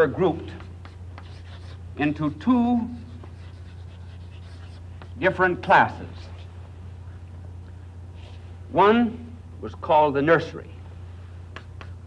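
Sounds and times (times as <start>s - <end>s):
steady low hum: 0.0s - 12.0s
chalk scratching on chalkboard: 0.3s - 5.3s.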